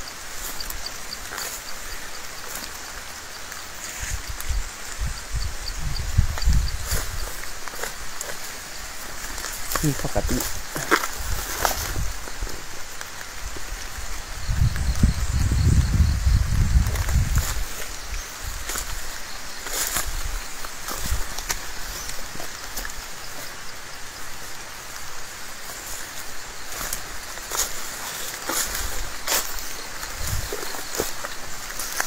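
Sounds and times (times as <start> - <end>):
undergrowth rustling: 0.0 - 32.0.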